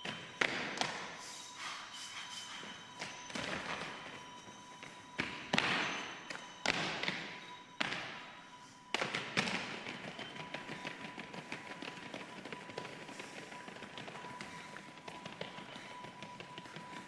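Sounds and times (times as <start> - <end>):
steady high tone: 0.0 - 17.0.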